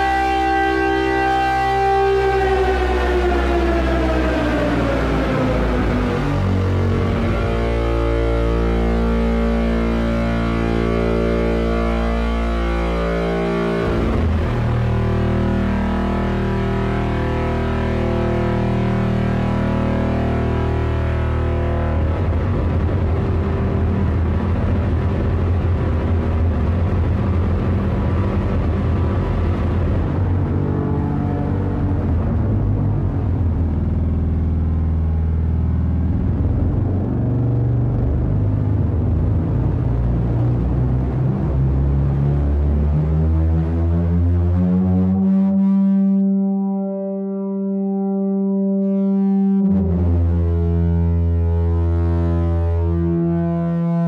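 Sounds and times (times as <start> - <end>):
synthesizer drone with reverb: 0.0 - 54.0.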